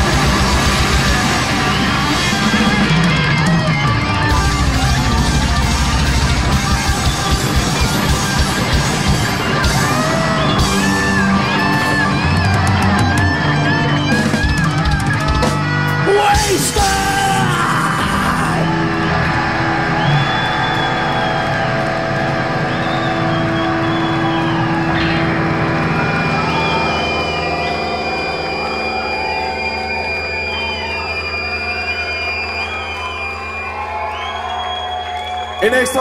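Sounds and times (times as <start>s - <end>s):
audience cheering and whooping: 0.0s - 36.0s
electric guitars and bass feedback: 0.0s - 36.0s.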